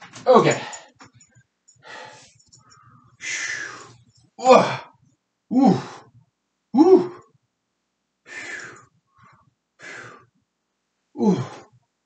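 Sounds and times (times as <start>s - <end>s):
man grunting: 0.2s - 0.8s, 4.4s - 4.9s, 5.5s - 6.0s, 6.8s - 7.2s, 11.2s - 11.6s
man sighing: 0.3s - 0.9s, 4.4s - 4.9s, 5.5s - 6.0s, 6.8s - 7.2s, 11.2s - 11.6s.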